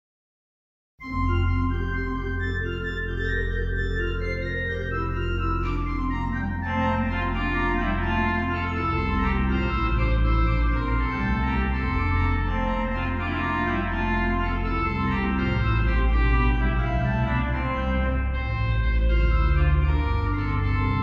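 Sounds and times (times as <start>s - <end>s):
organ playing held chords: 1.0s - 21.0s.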